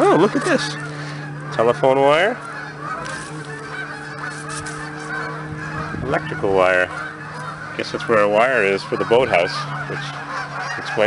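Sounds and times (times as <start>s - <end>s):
geese honking: 0.0s - 11.0s
steady low hum: 0.0s - 11.0s.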